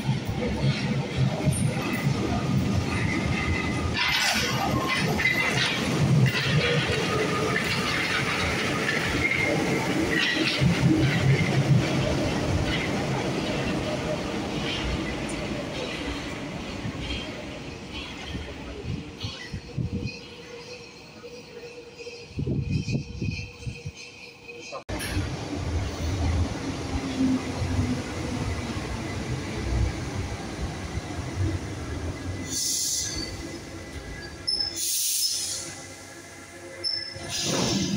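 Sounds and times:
train wheels clattering on rails: 0.0 - 25.4, 36.8 - 37.9.

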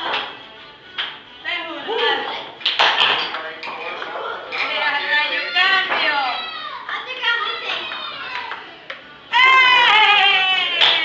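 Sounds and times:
children chattering and calling: 4.1 - 10.6.

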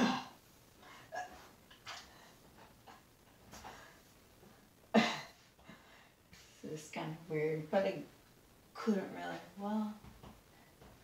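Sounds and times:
woman breathing: 3.5 - 6.7.

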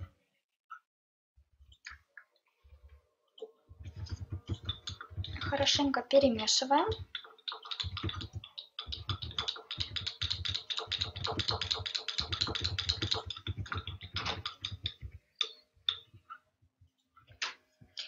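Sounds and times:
plastic spatula clicking against glass: 7.0 - 16.1.

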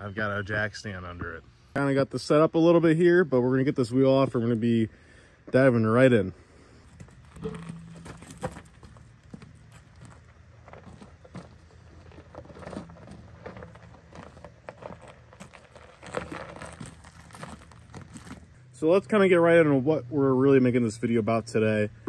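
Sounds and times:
wheel clunking and scuffing on gravel: 6.7 - 18.6
footsteps crunching on gravel: 6.8 - 18.6.

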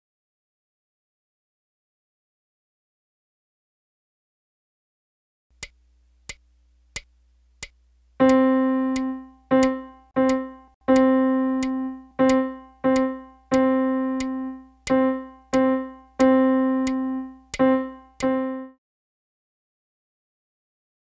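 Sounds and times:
short clicks counting in: 7.0 - 18.4
piano note struck: 8.2 - 18.8.

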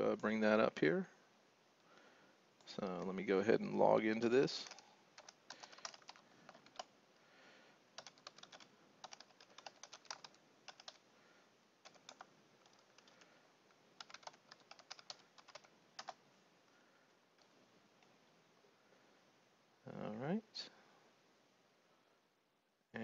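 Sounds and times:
faint typing on keyboard: 2.6 - 3.2, 4.1 - 7.0, 7.9 - 11.1, 11.8 - 18.2.

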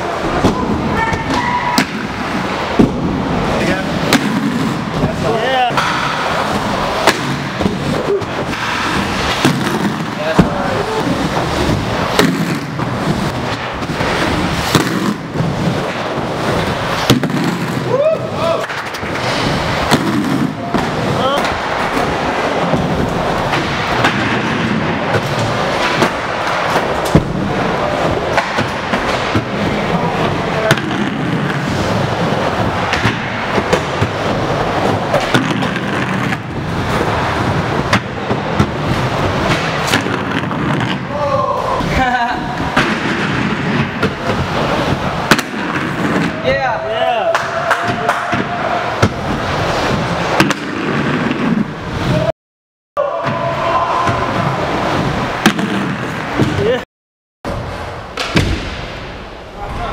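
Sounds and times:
sharp clacks of skate landings: 0.0 - 52.3, 57.5 - 59.1
skate wheels rolling on wood: 0.0 - 52.3, 53.0 - 56.8.

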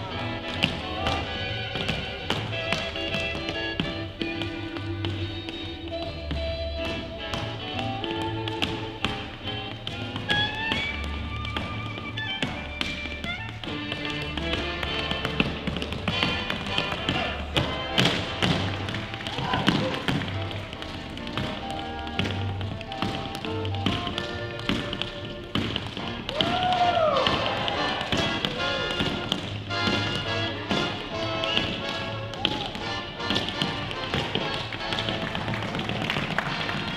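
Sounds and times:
swing jazz music: 0.0 - 36.9
tap shoes on wooden floor: 0.0 - 36.9.

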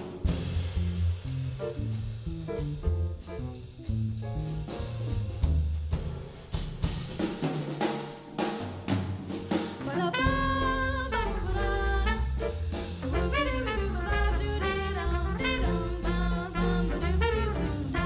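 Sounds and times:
electric bass: 0.0 - 6.1, 10.2 - 18.0
snare and cymbal strokes: 0.0 - 9.9, 11.3 - 18.0
trumpet: 9.9 - 18.0.

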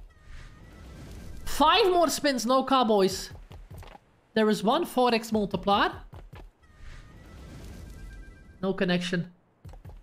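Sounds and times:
game background music: 0.0 - 10.0.

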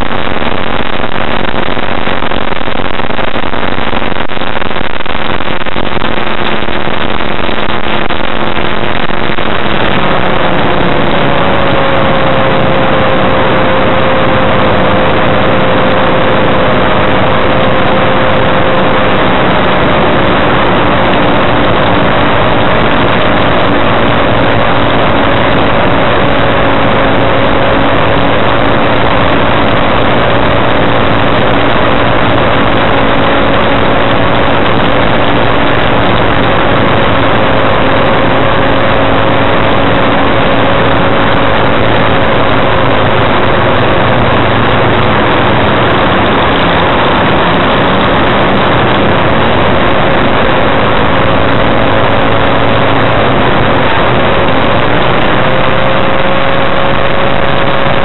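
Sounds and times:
light aircraft engine drone: 0.0 - 58.0.

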